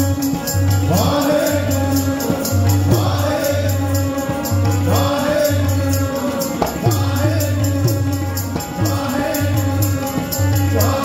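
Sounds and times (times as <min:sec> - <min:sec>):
harmonium chords: 0:00.0 - 0:11.0
tabla rhythm: 0:00.0 - 0:11.0
voices singing: 0:00.0 - 0:11.0.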